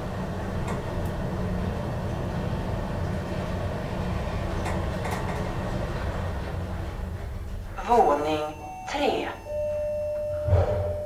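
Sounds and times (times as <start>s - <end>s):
elevator low rumble: 0.0s - 11.0s.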